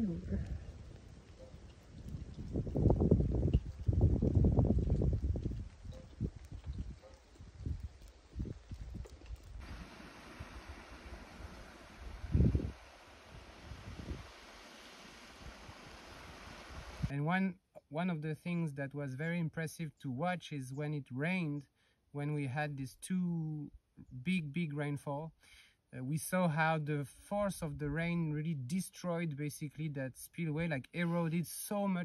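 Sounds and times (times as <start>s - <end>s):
wind on microphone: 0.0s - 17.1s
water rushing through spillway: 9.6s - 17.1s.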